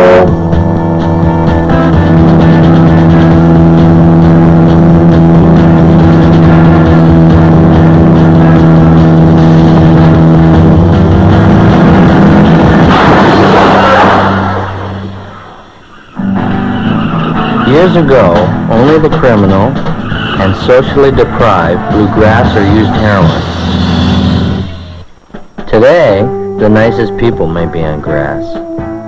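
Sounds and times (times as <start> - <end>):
car engine running: 0.0 - 25.6
film soundtrack music: 0.0 - 29.0
rushing noise: 2.1 - 25.2.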